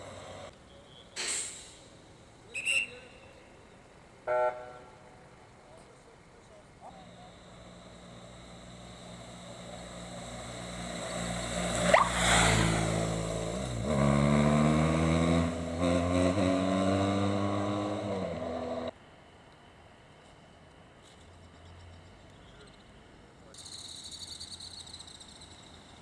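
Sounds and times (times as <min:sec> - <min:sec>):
motorcycle engine accelerating: 0:07.6 - 0:18.9.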